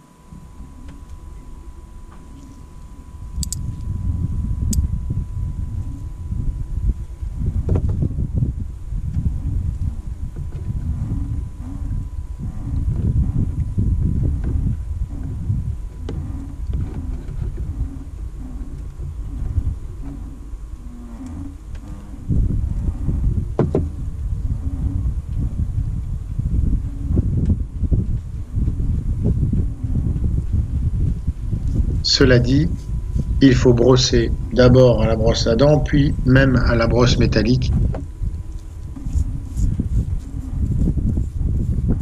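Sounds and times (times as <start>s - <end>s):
wind buffeting microphone: 0.0s - 42.0s.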